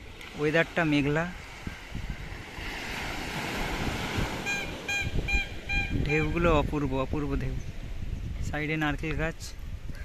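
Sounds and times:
waves washing onto sandy beach: 0.0 - 10.0
wind rumbling on microphone: 0.0 - 10.0.

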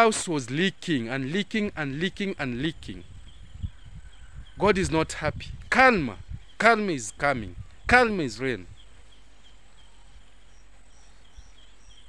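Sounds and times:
faint high-pitched chirping: 0.5 - 12.0.

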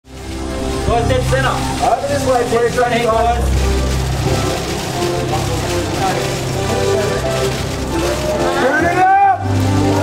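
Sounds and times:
background music with bass line: 0.1 - 10.0
murmur of voices: 0.5 - 10.0.

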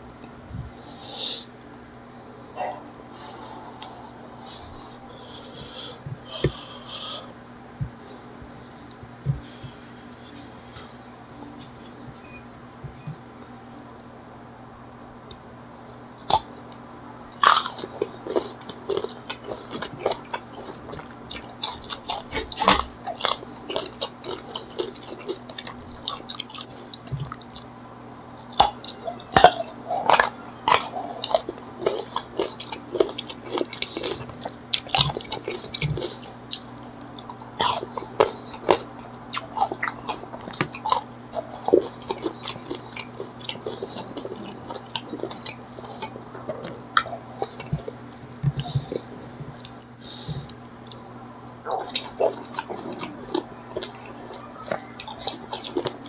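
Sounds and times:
crunchy biting and chewing: 17.2 - 49.8, 50.4 - 56.0.

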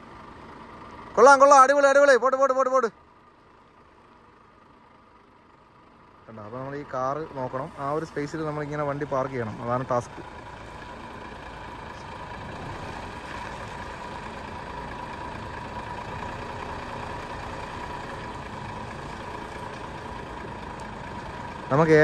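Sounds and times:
truck diesel engine running: 0.0 - 22.0.

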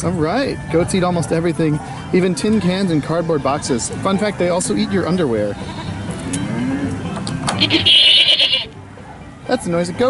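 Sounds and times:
recorded goat bleat through speaker: 5.6 - 6.0, 7.6 - 8.7.

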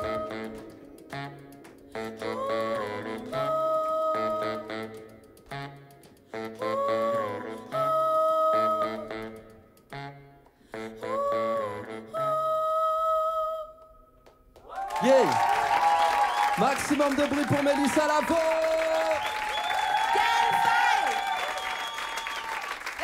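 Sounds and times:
woman humming a melody: 0.0 - 13.9.

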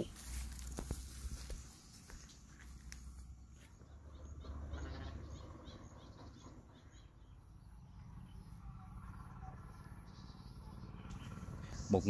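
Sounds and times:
low steady rumble: 0.0 - 12.0
loud bird call: 3.6 - 12.0.

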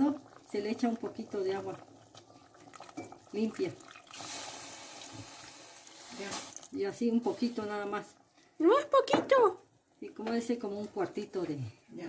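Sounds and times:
water pouring into sauce: 0.0 - 6.8.

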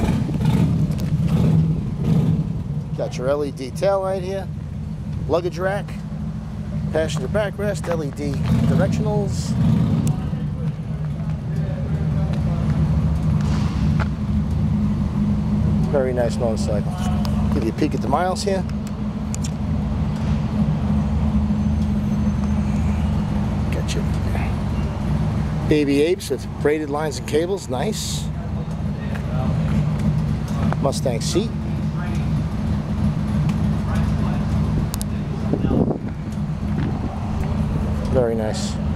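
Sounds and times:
engine idling: 0.0 - 38.9
sharp click: 18.6 - 20.3.

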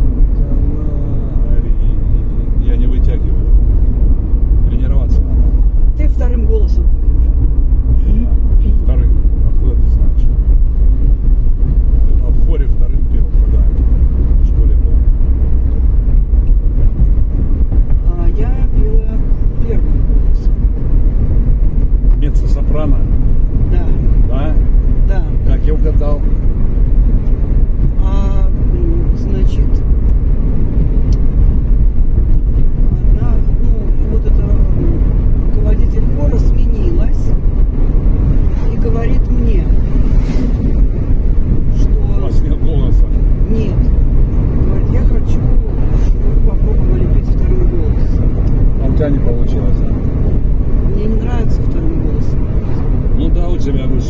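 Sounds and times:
road and engine rumble in car: 0.0 - 54.0.

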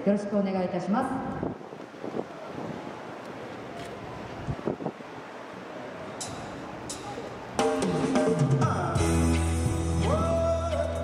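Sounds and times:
woman speaking announcement: 0.0 - 1.3
wind rush on microphone: 1.1 - 5.4.

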